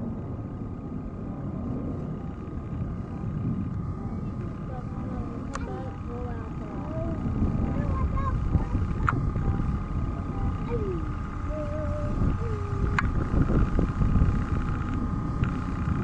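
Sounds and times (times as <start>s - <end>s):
jet aircraft rumble: 0.0s - 16.0s
thin steady whine: 0.0s - 16.0s.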